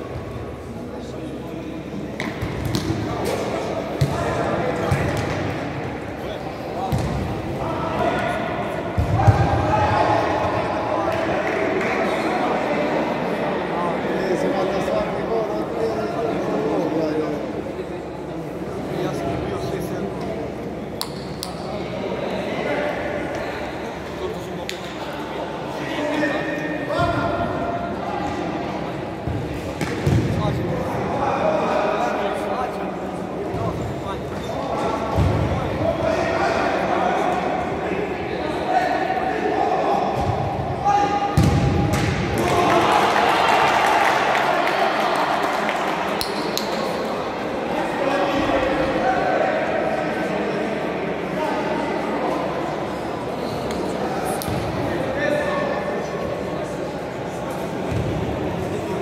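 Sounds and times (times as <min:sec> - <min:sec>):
players shouting in echoing hall: 0:00.0 - 0:59.0
spectators talking: 0:00.0 - 0:59.0
ball kicked on indoor court: 0:02.2 - 0:03.0, 0:04.0 - 0:04.2, 0:06.9 - 0:07.3, 0:41.3 - 0:42.4.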